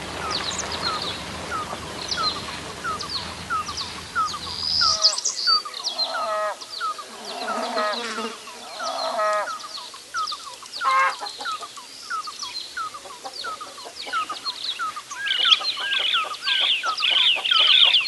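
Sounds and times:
hen clucking: 0:00.0 - 0:05.2, 0:05.9 - 0:06.6, 0:08.8 - 0:09.8, 0:10.8 - 0:11.8, 0:12.8 - 0:18.0.

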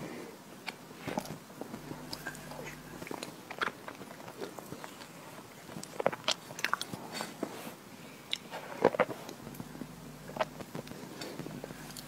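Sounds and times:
wet chewing mouth clicks: 0:05.7 - 0:07.0.

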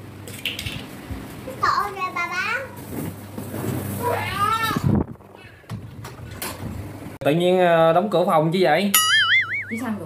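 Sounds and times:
high-pitched vocal cry: 0:04.0 - 0:04.9.

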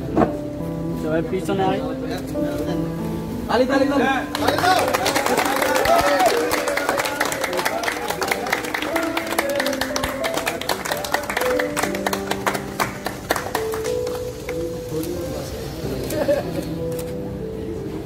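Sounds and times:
music: 0:00.0 - 0:18.0
crowd clapping: 0:04.3 - 0:14.6.

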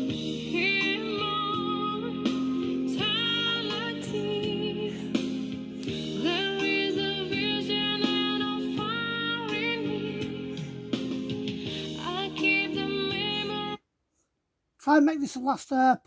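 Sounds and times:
instrumental backing: 0:00.0 - 0:13.7
woman singing a slow ballad: 0:00.0 - 0:13.8.

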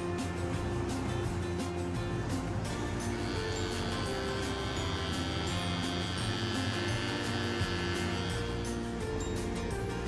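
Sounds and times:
upbeat background music: 0:00.0 - 0:10.0
hair clipper humming: 0:02.8 - 0:09.0.

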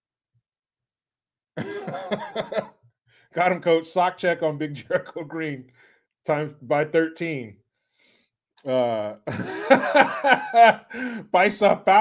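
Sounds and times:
man laughing: 0:01.6 - 0:02.8, 0:08.7 - 0:12.0.

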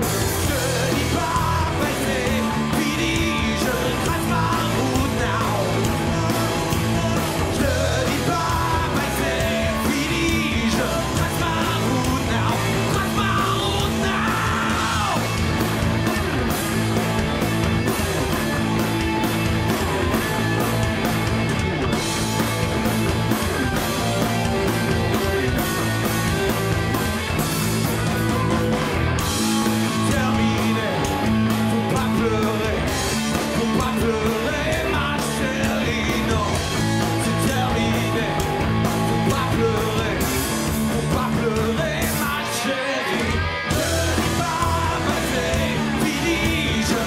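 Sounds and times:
drum and cymbal hits: 0:00.0 - 0:42.4
live rock band playing: 0:00.0 - 0:47.0.

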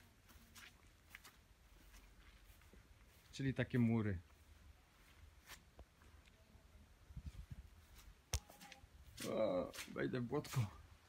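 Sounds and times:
faint footsteps: 0:00.0 - 0:10.9.

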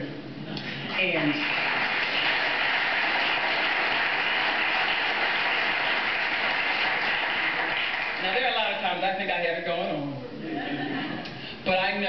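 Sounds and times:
audience applauding: 0:01.1 - 0:08.8.

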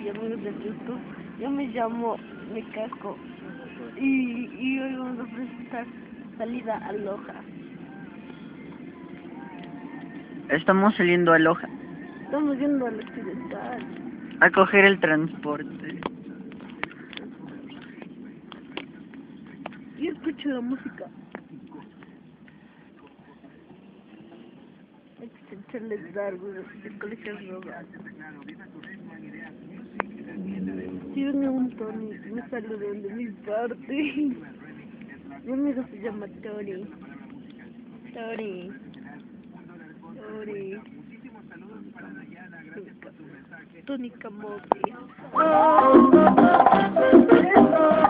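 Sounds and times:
indistinct background voices: 0:00.0 - 0:48.0
street traffic rumble: 0:00.0 - 0:48.0.

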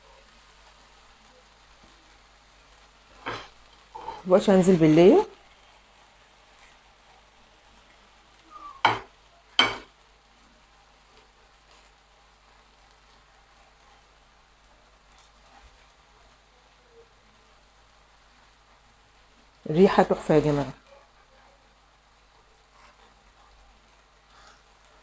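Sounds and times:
beef sizzling in a pan: 0:00.0 - 0:25.0.

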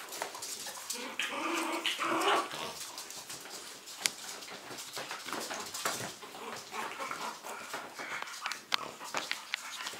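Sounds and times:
claws clicking on tile floor: 0:00.0 - 0:09.9
puppies vocalising: 0:00.7 - 0:03.4.

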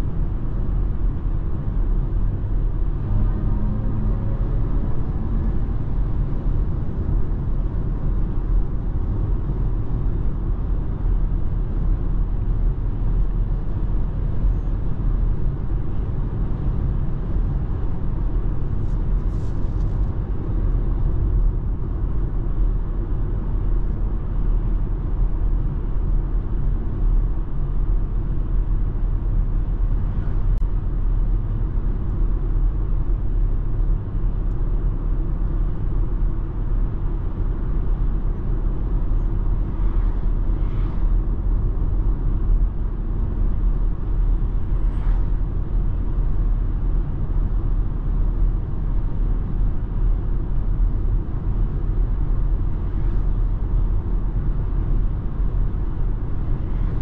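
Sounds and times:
road and tyre rumble: 0:00.0 - 0:57.0
wind noise inside car: 0:00.0 - 0:57.0.

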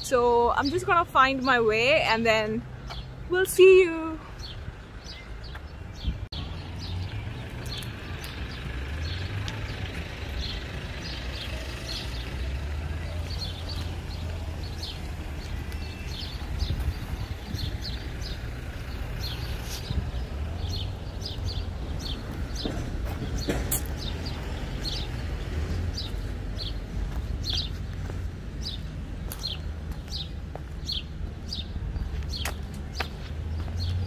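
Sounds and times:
small birds chirping: 0:00.0 - 0:34.0.

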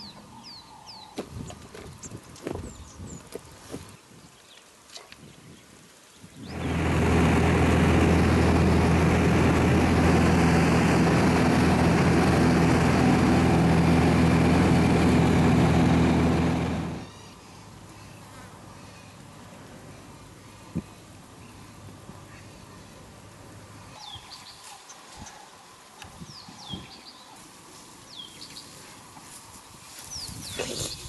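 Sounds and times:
aircraft engine droning: 0:06.5 - 0:17.2.

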